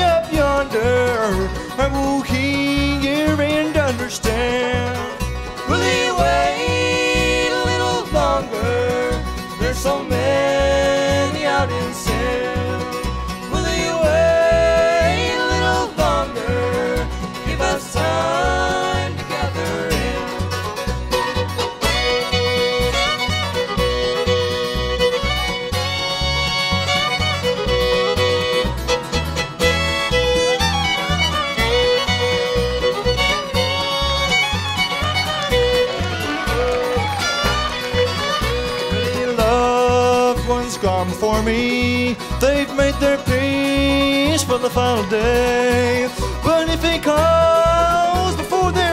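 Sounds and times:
bluegrass band playing: 0.0s - 48.9s
fiddle lead: 0.0s - 48.9s
upright bass beat: 0.0s - 48.9s.

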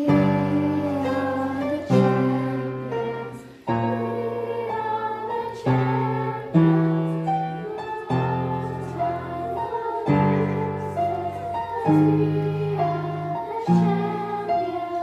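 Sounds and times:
piano chords: 0.0s - 15.0s.

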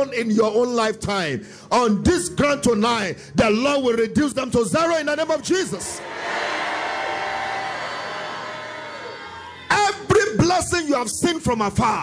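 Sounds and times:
congregation voices: 5.2s - 10.1s.

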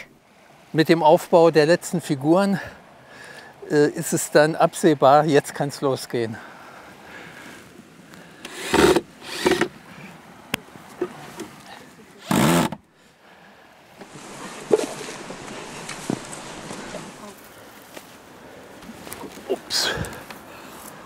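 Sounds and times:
cordless drill driving screws: 8.4s - 9.7s.

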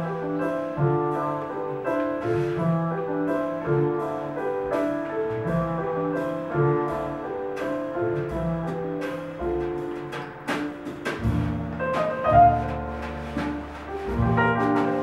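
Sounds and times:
drum kit and cymbals: 0.0s - 15.0s
grand piano playing: 0.0s - 15.0s
walking upright bass: 0.0s - 15.0s.

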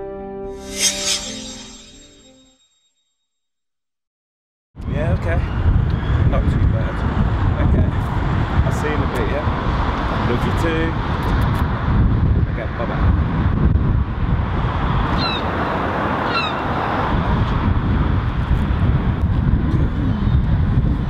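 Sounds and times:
brief high chirps: 0.5s - 3.0s
wind buffeting microphone: 4.8s - 21.0s.

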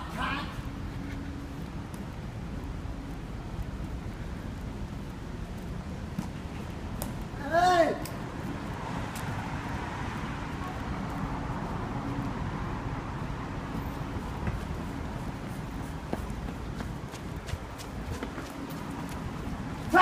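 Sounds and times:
traffic noise with low hum: 0.0s - 20.0s
footsteps on pavement: 8.2s - 12.4s, 13.7s - 20.0s.

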